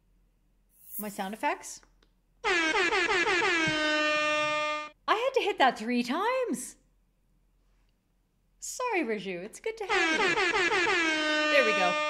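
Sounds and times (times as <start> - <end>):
air horn blast: 2.4 - 5.0, 9.9 - 12.0.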